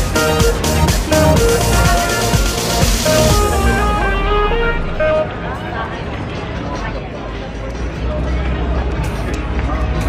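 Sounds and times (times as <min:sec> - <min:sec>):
background music with held notes: 0:00.0 - 0:05.8
passers-by talking: 0:00.0 - 0:10.0.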